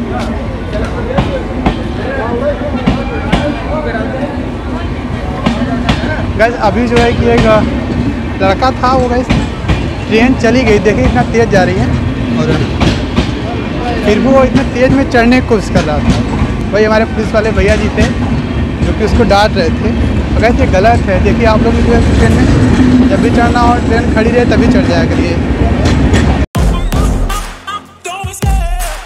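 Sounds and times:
train wheels clacking: 0:00.0 - 0:04.0, 0:05.2 - 0:26.5
train rumbling past: 0:00.0 - 0:26.5.

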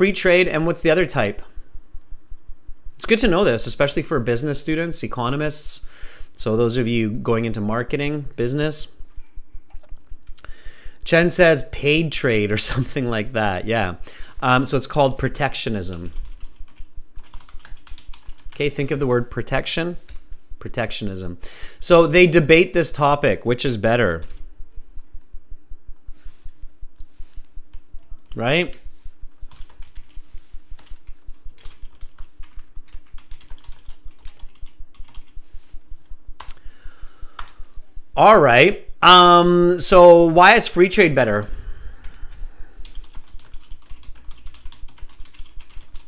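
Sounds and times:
typing on keyboard: 0:15.9 - 0:18.6, 0:29.5 - 0:30.2, 0:30.8 - 0:35.4, 0:42.8 - 0:46.0.

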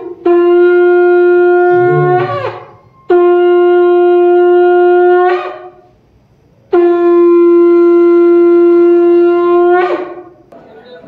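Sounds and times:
conch shell blown: 0:00.0 - 0:05.9, 0:06.7 - 0:10.4.

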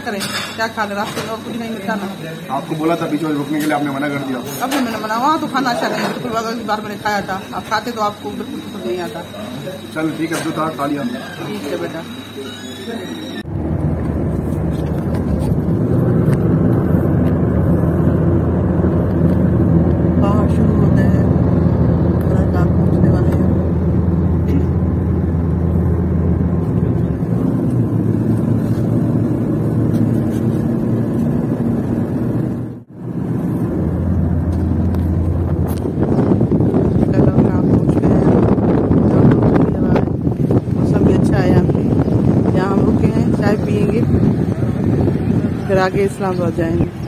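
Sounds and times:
car engine and tyres rumbling: 0:13.4 - 0:39.6.

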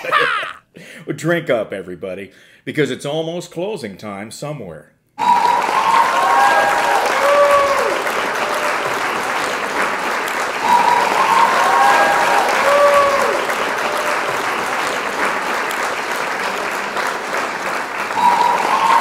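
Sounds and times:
whoops and cheers: 0:05.2 - 0:09.2, 0:10.5 - 0:14.4, 0:18.0 - 0:19.0
crowd clapping: 0:05.2 - 0:19.0.

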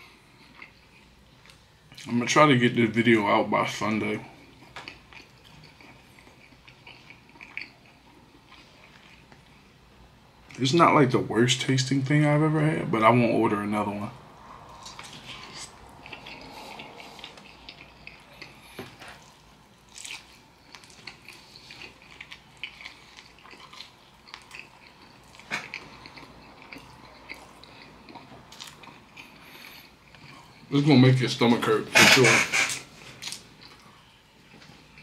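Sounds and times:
man chewing food: 0:00.0 - 0:02.1, 0:04.2 - 0:10.6, 0:14.3 - 0:30.9, 0:32.2 - 0:35.0.

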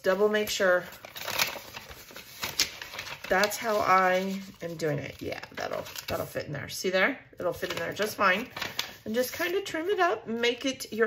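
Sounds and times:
paper envelope rustling: 0:00.2 - 0:06.4, 0:07.4 - 0:10.0.

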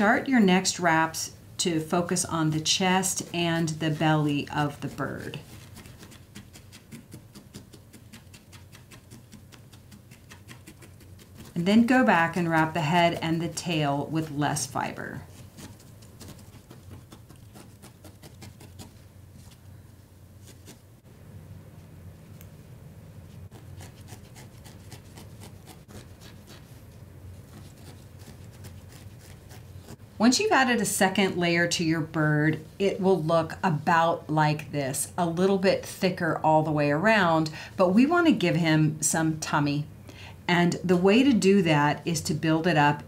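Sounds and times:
low steady hum: 0:00.0 - 0:43.0
felting needle stabbing wool: 0:02.1 - 0:19.6.

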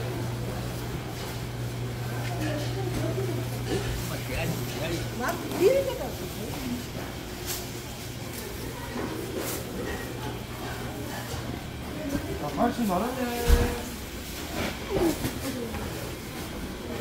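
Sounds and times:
chatter of shoppers: 0:00.0 - 0:17.0.

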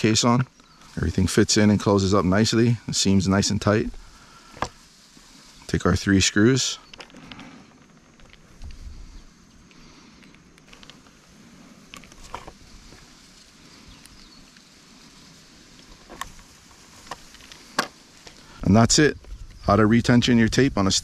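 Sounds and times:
faint handling sounds: 0:00.2 - 0:19.6.

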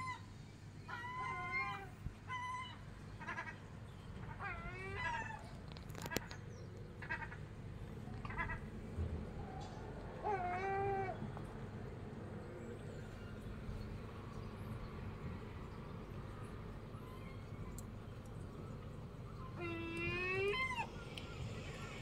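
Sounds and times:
mewing animal calls: 0:17.0 - 0:22.0.

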